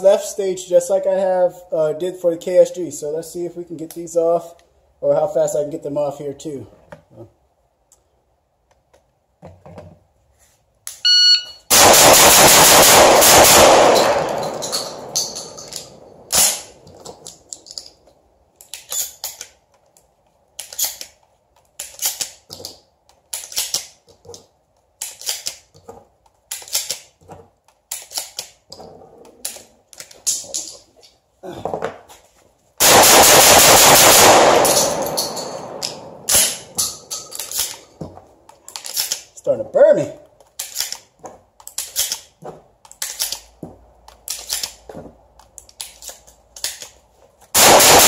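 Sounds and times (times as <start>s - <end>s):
shot timer beep: 11.0s - 11.7s
shotgun firing rapidly: 11.7s - 15.1s, 32.8s - 36.7s, 47.6s - 48.0s
sharp gunshot crack: 11.7s - 15.2s, 32.8s - 36.8s, 47.6s - 48.0s
shells clicking into magazine: 13.3s - 18.0s, 18.6s - 24.0s, 25.0s - 25.7s, 26.5s - 27.1s, 27.9s - 28.6s, 34.1s - 37.9s, 38.5s - 39.3s, 40.4s - 43.5s, 44.1s - 44.8s, 45.4s - 47.0s.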